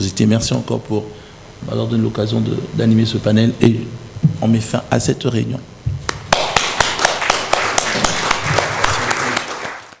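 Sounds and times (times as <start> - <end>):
audience applauding: 6.1 - 10.0.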